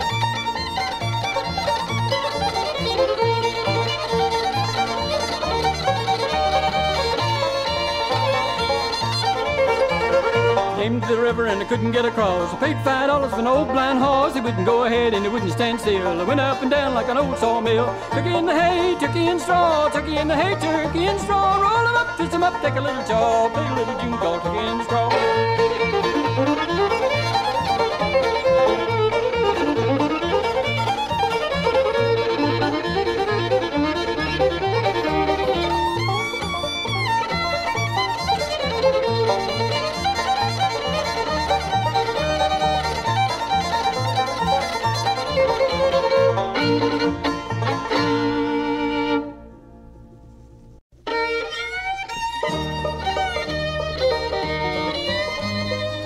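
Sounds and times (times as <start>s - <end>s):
walking bass line: 0.0s - 49.2s, 51.2s - 56.0s
fiddle: 0.0s - 49.6s, 51.0s - 56.0s
bluegrass string band playing: 0.0s - 49.8s, 50.4s - 56.0s.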